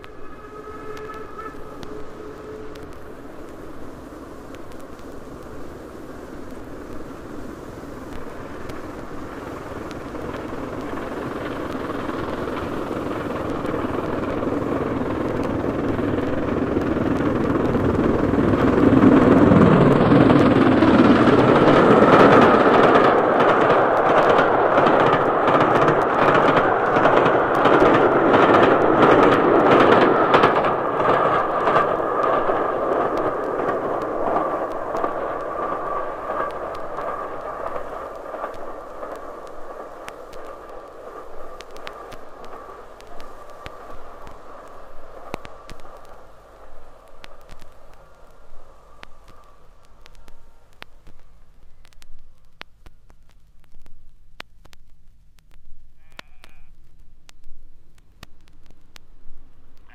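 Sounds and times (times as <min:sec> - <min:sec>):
steam train approaching: 0:00.0 - 0:52.0.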